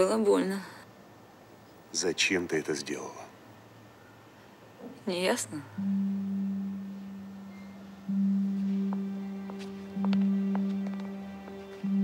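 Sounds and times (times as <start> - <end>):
low held musical note: 5.7 - 12.0.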